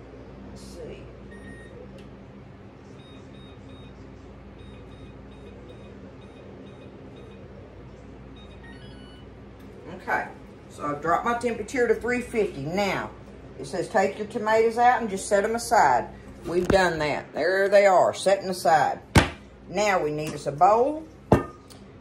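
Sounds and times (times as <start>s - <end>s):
steady low hum: 0.0s - 22.0s
oven control panel beeping: 3.0s - 7.6s, 8.3s - 9.3s.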